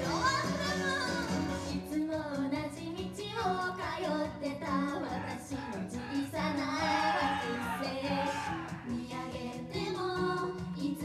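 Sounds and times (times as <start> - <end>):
pop backing track: 0.0 - 11.0
women singing into microphones: 1.7 - 11.0.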